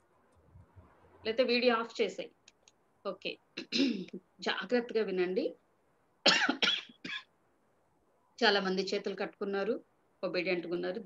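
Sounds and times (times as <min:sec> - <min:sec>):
woman coughing: 0:03.6 - 0:04.2, 0:06.2 - 0:07.3.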